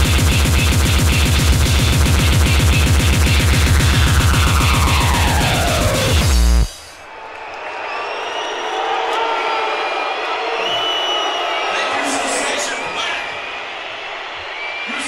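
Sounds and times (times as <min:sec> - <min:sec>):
crowd talking: 0:06.8 - 0:15.0.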